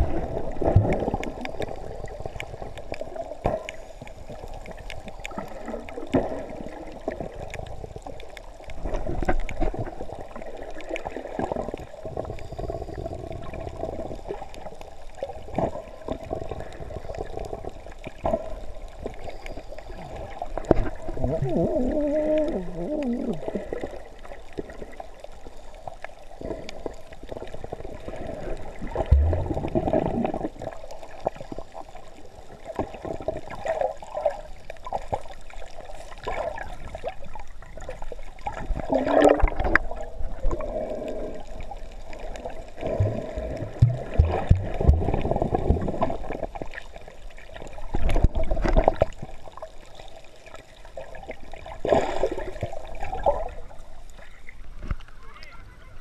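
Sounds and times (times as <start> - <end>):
underwater sloshing and gurgling: 0.0 - 56.0
deep underwater thumps: 29.0 - 30.1, 42.9 - 46.1.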